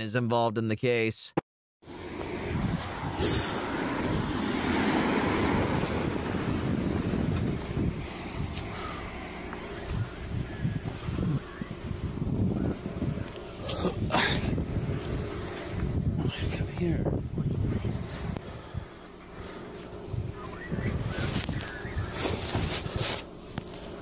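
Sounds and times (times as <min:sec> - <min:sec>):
car running nearby: 0:01.8 - 0:24.0
wind on microphone: 0:02.4 - 0:19.0, 0:20.0 - 0:23.2
short rustle: 0:21.2 - 0:24.0.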